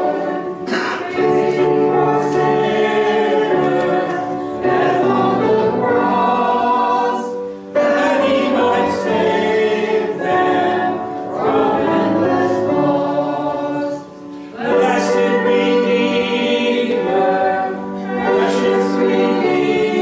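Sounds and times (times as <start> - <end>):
congregation singing a hymn: 0.0 - 20.0.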